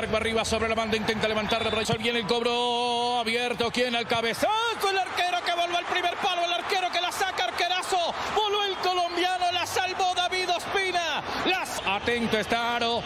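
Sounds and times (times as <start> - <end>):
man commentating: 0.0 - 13.0.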